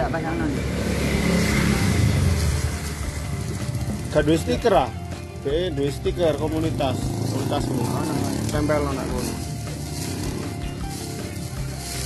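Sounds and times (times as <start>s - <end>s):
motorcycle passing by: 0.0s - 12.0s.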